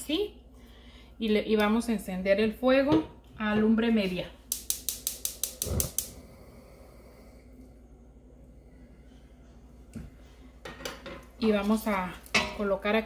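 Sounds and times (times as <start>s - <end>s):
stove igniter clicking: 4.5s - 6.2s.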